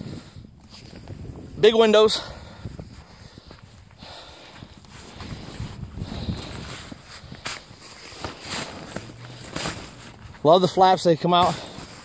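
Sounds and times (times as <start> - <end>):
footsteps on snowy ice: 2.4 - 12.0.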